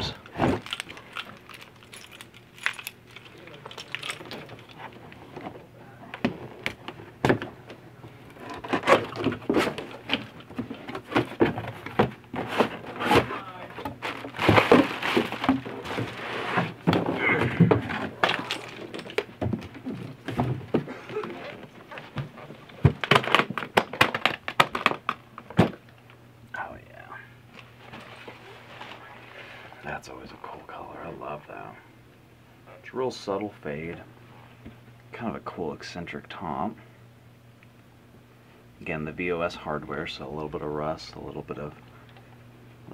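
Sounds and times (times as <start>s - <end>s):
cardboard scrapes and rustles: 12.4s - 13.4s, 14.0s - 16.8s.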